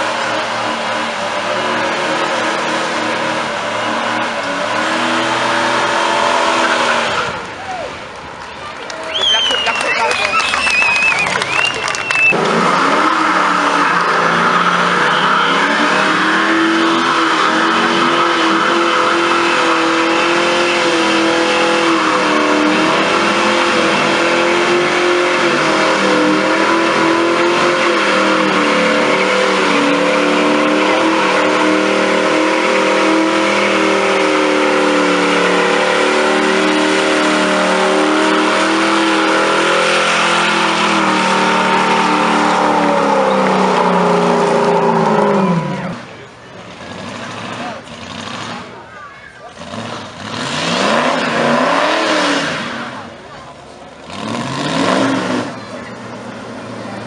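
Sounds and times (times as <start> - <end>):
car engine revving high: 0.0 - 7.9, 9.2 - 57.0.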